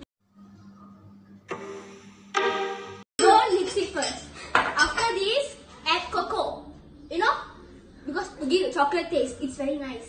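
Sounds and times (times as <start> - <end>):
held musical tone: 1.5 - 3.1.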